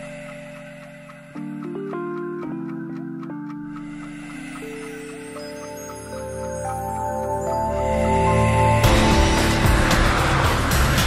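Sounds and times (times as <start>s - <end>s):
background music: 0.0s - 11.0s
scattered clicks: 0.0s - 11.0s.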